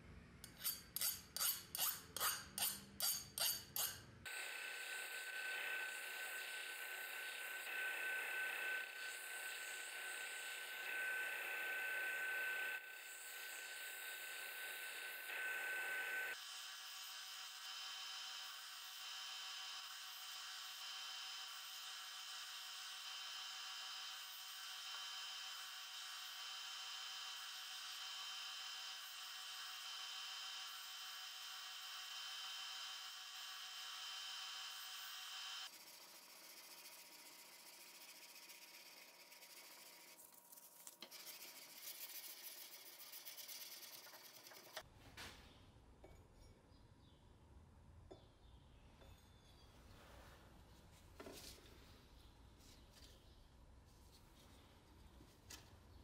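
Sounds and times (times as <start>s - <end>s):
file scraping steel blade: 0.4s - 4.1s, 33.8s - 44.9s
belt grinder grinding blade: 0.5s - 40.2s.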